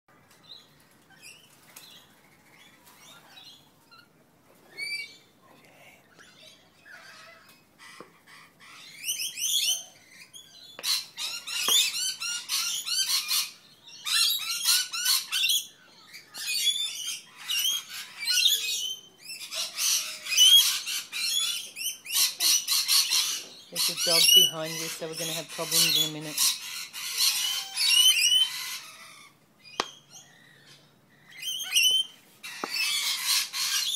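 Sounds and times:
lorikeets chirping and screeching: 0:00.4 - 0:33.9.

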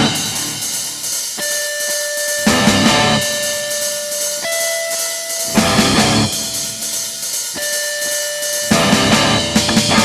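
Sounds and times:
drums hitting hard: 0:00.0 - 0:01.5, 0:02.4 - 0:10.0
cymbal wash: 0:00.0 - 0:10.0
electric guitar sustained notes: 0:00.0 - 0:10.0
rock band playing live: 0:00.0 - 0:10.0.

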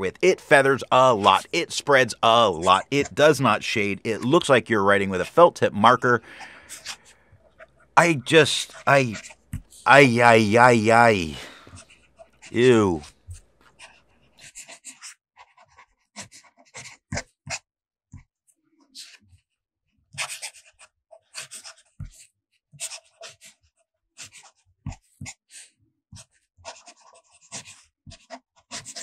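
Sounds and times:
fountain pen scratching on paper: 0:13.7 - 0:17.6, 0:20.2 - 0:22.2, 0:22.8 - 0:23.4, 0:24.2 - 0:25.0, 0:26.2 - 0:29.0.

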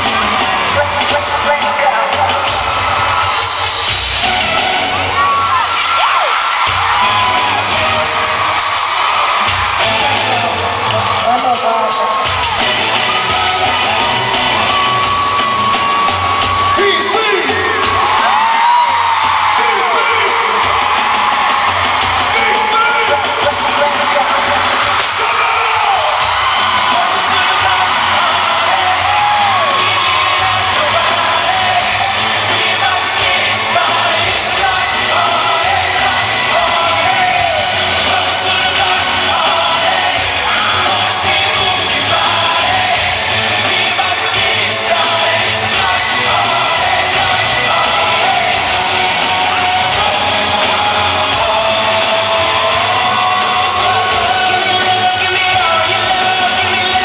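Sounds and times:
amplified band music with singing: 0:00.0 - 0:57.0
crowd screaming and cheering: 0:00.0 - 0:57.0.

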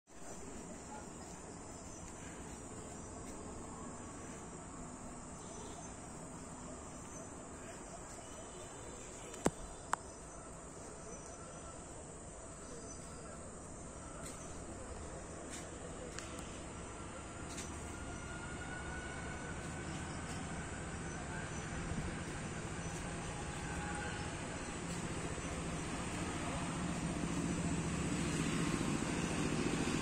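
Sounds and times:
night insects chorus: 0:00.3 - 0:30.0.

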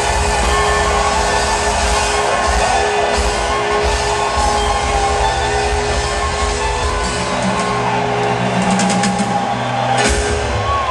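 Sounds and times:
live rock band: 0:00.0 - 0:10.9.

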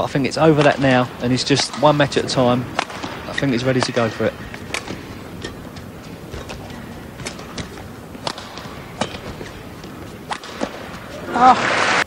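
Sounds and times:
racket striking shuttlecock: 0:00.4 - 0:11.8
footfalls on court: 0:01.8 - 0:11.9.

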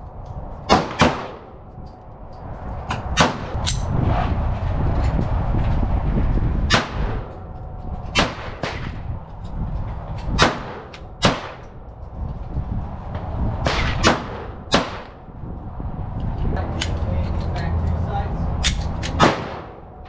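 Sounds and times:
pistol shots: 0:00.7 - 0:01.5, 0:10.4 - 0:11.7, 0:19.0 - 0:19.8.

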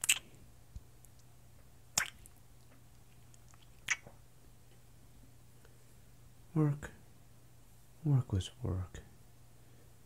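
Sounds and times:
wet lip smacks: 0:00.0 - 0:00.3, 0:01.9 - 0:04.1
faint low hum: 0:00.0 - 0:10.0.

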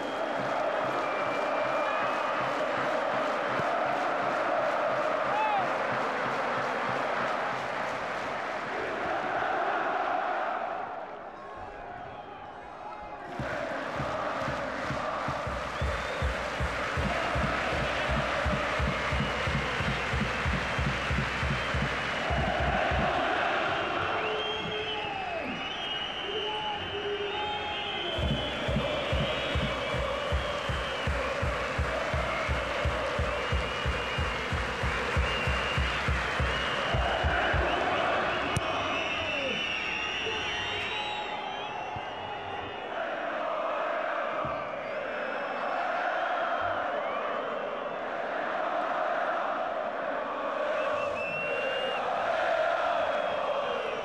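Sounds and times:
shrill whistles: 0:00.0 - 0:02.5, 0:15.3 - 0:43.0, 0:50.6 - 0:54.0
stadium crowd chanting: 0:00.0 - 0:54.0
drum beaten in fast rhythm: 0:13.4 - 0:23.3, 0:28.2 - 0:37.9.

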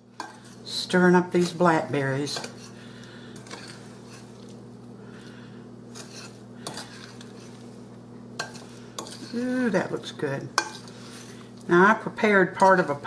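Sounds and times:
utensil scraping in glass bowl: 0:05.9 - 0:07.6, 0:08.4 - 0:09.5.

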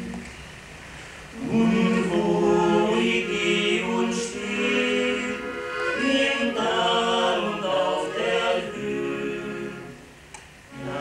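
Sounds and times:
accordion: 0:01.4 - 0:10.1, 0:10.7 - 0:11.0
male vocal quartet singing: 0:01.4 - 0:10.1, 0:10.7 - 0:11.0.

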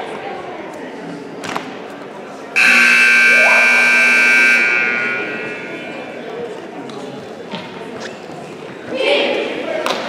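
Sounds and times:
scoreboard horn buzzing: 0:02.6 - 0:06.4.

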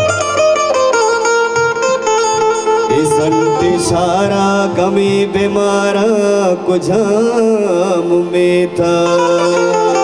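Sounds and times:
harmonium: 0:00.0 - 0:10.0
man singing: 0:02.8 - 0:10.0.

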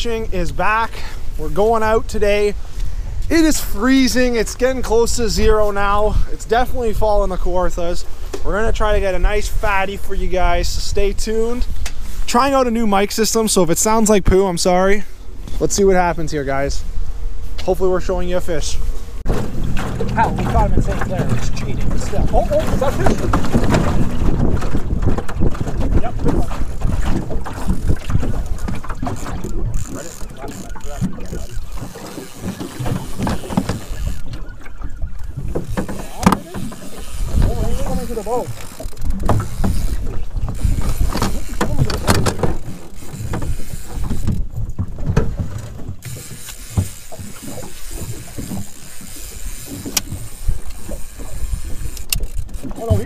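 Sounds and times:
wind buffeting microphone: 0:00.0 - 0:13.0, 0:15.2 - 0:53.0
water slapping boat hull: 0:00.0 - 0:53.0.

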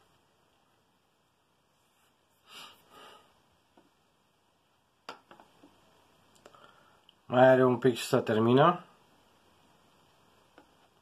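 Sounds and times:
soft breaths: 0:01.7 - 0:03.5, 0:06.4 - 0:07.2.

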